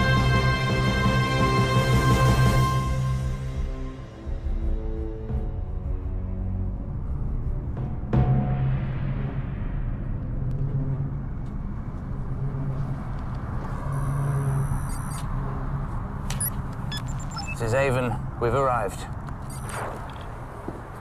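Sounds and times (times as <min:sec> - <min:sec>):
high electronic tones: 0:13.9 - 0:15.3, 0:16.3 - 0:17.7, 0:19.4 - 0:20.0.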